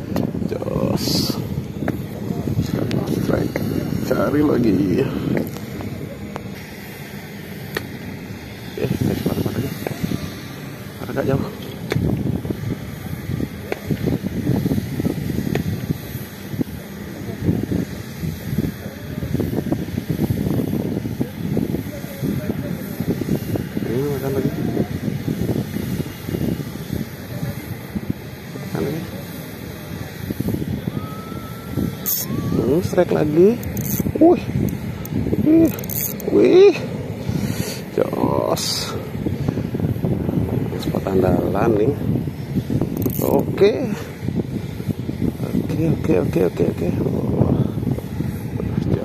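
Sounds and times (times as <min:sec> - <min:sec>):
outdoor background noise: 0:00.0 - 0:49.0
indistinct voices talking: 0:21.1 - 0:44.3.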